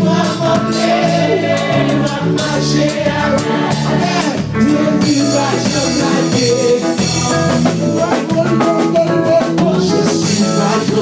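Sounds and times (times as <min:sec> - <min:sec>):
women singing gospel: 0:00.0 - 0:05.1
drum kit and band: 0:00.0 - 0:11.0.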